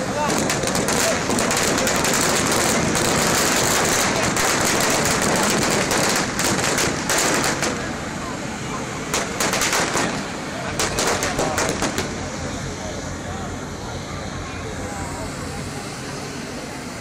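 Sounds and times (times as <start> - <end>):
fireworks crackling: 0.0 - 13.2.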